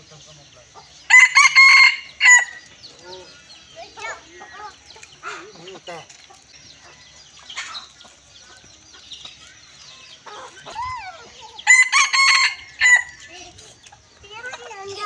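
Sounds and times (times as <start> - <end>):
rooster crowing: 1.1 - 2.6, 11.7 - 13.1.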